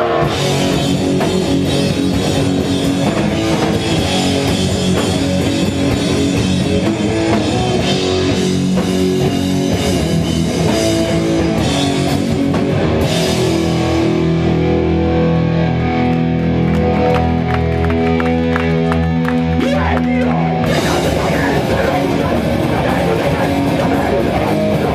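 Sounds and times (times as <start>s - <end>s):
held guitar chords: 0.0s - 24.9s
punk band playing: 0.0s - 24.9s.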